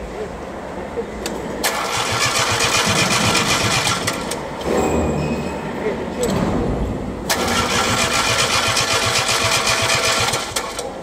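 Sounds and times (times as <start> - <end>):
diesel engine cranking: 1.6 - 4.7, 7.3 - 11.0.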